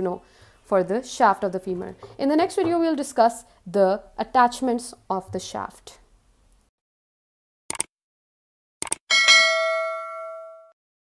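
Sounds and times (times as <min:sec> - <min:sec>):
notification bell ding: 0:09.1 - 0:10.8.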